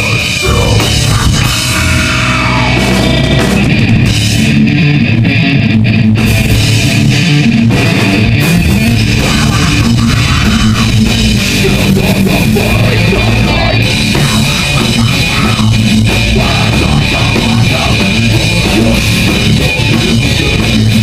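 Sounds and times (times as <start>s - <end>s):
distorted electric guitar riffing: 0.0s - 21.0s
drum kit: 0.0s - 21.0s.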